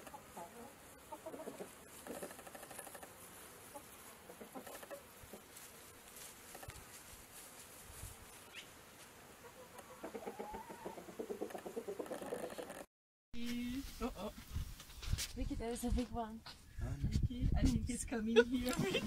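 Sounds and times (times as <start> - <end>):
chickens clucking: 0.0 - 5.6, 9.4 - 12.9
chicken pitched calls: 9.4 - 12.8.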